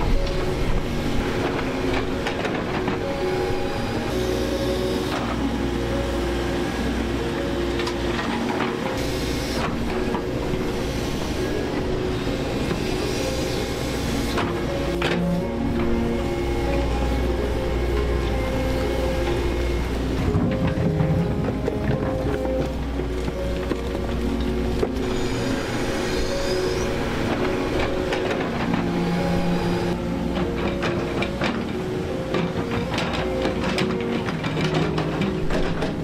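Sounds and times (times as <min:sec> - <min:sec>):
background music: 0:00.0 - 0:36.0
excavator diesel engine running: 0:00.0 - 0:36.0.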